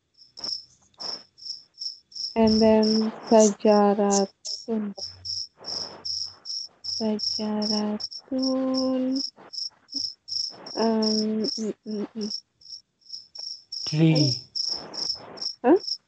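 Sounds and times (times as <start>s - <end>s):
crickets chirping: 0.0s - 16.0s
person speaking: 2.4s - 5.1s, 7.0s - 9.2s, 10.7s - 12.3s, 13.9s - 14.4s.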